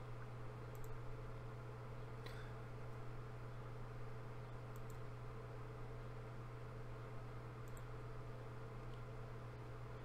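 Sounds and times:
low electrical hum: 0:00.0 - 0:10.0
computer mouse clicks: 0:00.7 - 0:01.0, 0:04.7 - 0:05.1, 0:07.6 - 0:07.9.

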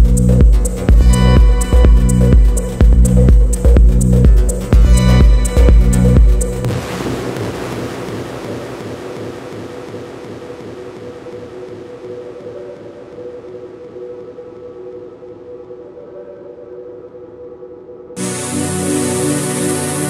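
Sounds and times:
synth noise wash: 0:04.6 - 0:20.0
held synth pad notes: 0:18.2 - 0:20.0.

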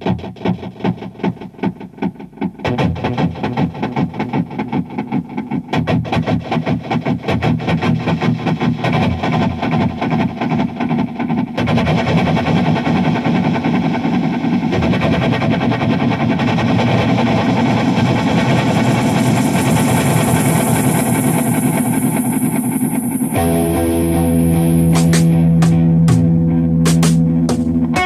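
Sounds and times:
distorted electric guitar drone: 0:00.0 - 0:28.0
bright hiss: 0:18.2 - 0:23.8.

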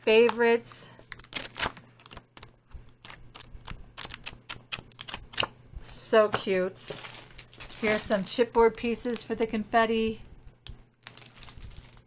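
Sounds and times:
paper sheets rustling: 0:06.8 - 0:09.3.

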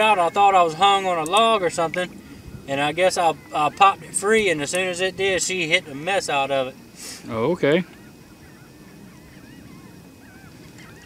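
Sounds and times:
birds chirping and whistling: 0:00.0 - 0:11.0.

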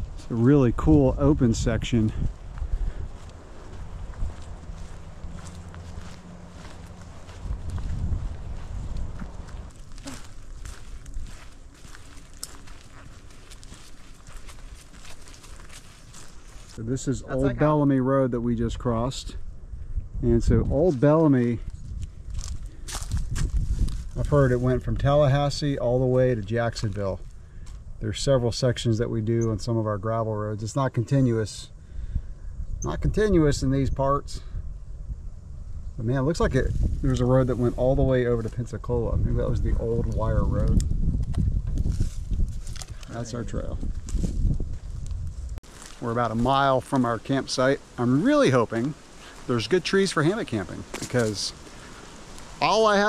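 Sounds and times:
footsteps on leafy dirt trail: 0:00.0 - 0:01.2, 0:01.9 - 0:16.8, 0:20.8 - 0:24.8, 0:40.6 - 0:52.8
low microphone rumble: 0:00.0 - 0:17.8, 0:31.7 - 0:48.2
quiet outdoor background: 0:00.0 - 0:53.0.

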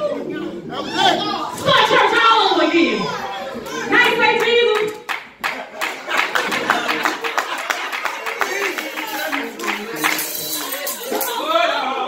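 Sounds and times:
hand clapping: 0:04.8 - 0:11.4.

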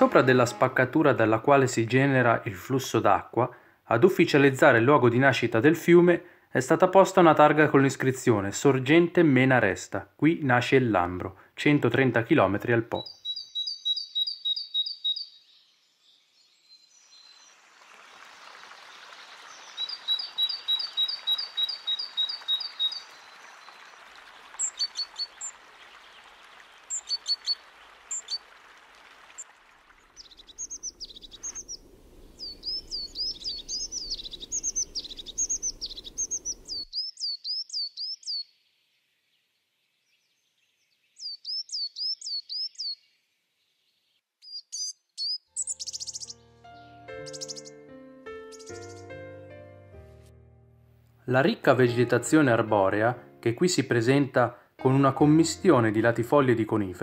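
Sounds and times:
soft piano music: 0:00.0 - 0:01.4, 0:45.5 - 0:57.0
songbirds singing: 0:11.9 - 0:28.5, 0:29.2 - 0:49.4.

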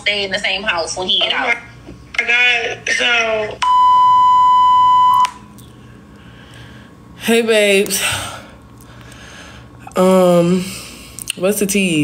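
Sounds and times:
steady electronic beep: 0:03.6 - 0:05.3.

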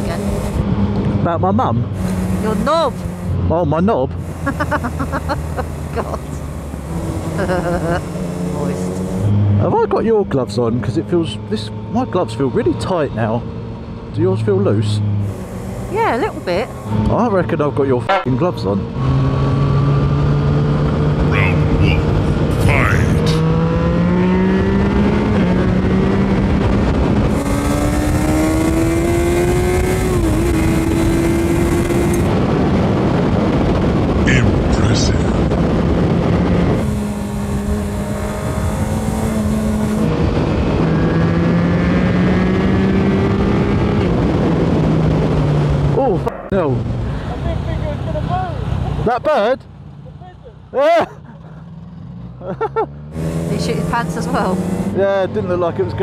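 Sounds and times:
motorcycle engine accelerating: 0:00.0 - 0:49.5, 0:50.8 - 0:56.0.

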